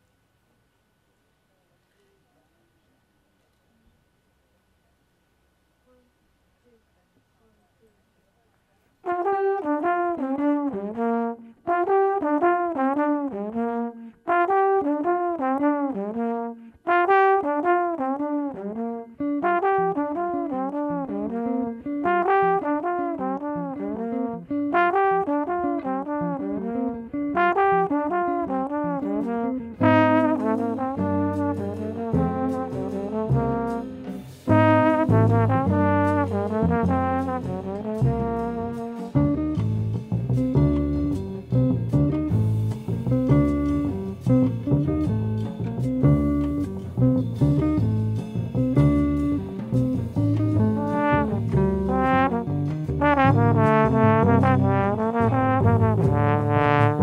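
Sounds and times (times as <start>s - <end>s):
solo trombone jazz phrase: 9.0s - 45.2s, 45.9s - 57.0s
upright bass notes: 19.5s - 57.0s
drum cymbals: 29.8s - 57.0s.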